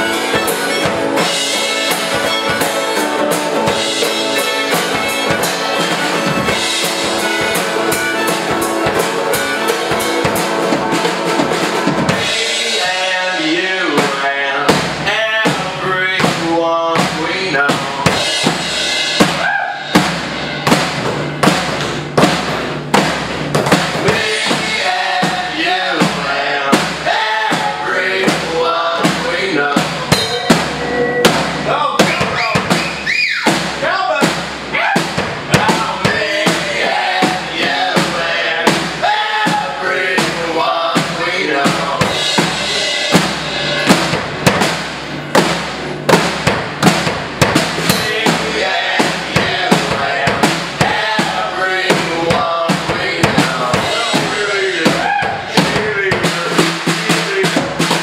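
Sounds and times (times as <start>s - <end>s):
strummed acoustic guitar: 0.0s - 32.8s, 35.0s - 58.0s
drum kit beat: 0.0s - 58.0s
rock band playing: 0.0s - 58.0s
person singing: 12.2s - 18.7s, 24.0s - 31.4s, 34.8s - 43.8s, 47.9s - 58.0s.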